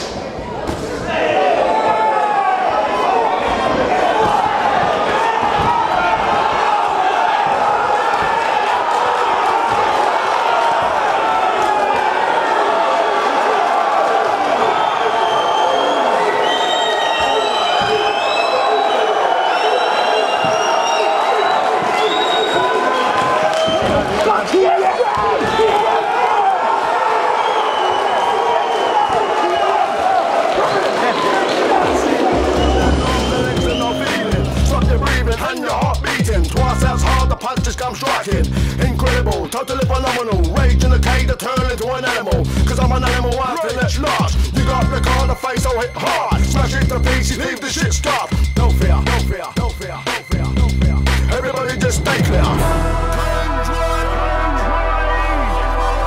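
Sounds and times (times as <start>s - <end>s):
crowd shouting and cheering: 0.0s - 56.0s.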